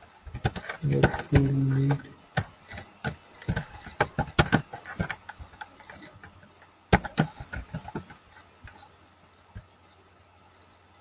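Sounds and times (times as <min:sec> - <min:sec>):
computer keys clicking: 0:00.3 - 0:08.8.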